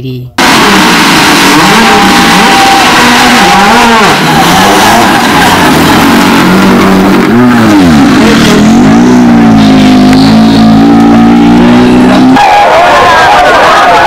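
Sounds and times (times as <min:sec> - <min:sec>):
rally car engine revving: 0:00.4 - 0:14.0.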